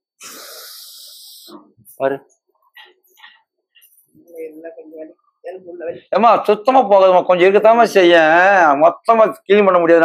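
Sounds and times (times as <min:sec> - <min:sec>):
person blowing out breath: 0:00.2 - 0:01.6.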